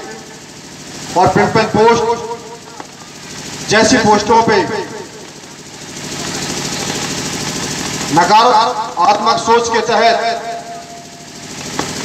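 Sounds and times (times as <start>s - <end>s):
engine running steadily: 0.0s - 12.0s.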